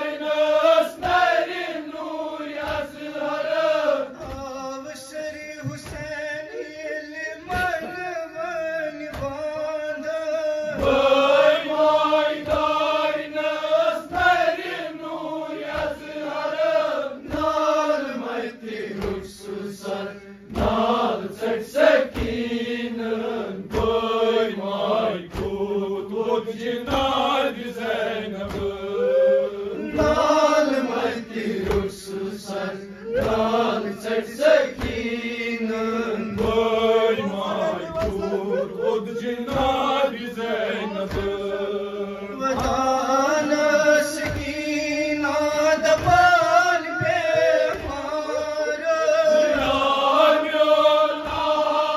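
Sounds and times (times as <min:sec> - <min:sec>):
male voices chanting a lament: 0:00.0 - 0:51.9
person singing into a microphone: 0:00.0 - 0:51.9
hands beating chests: 0:36.3 - 0:41.8.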